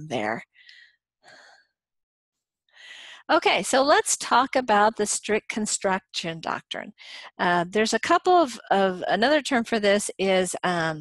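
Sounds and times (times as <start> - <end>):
person speaking: 0.0 - 0.4.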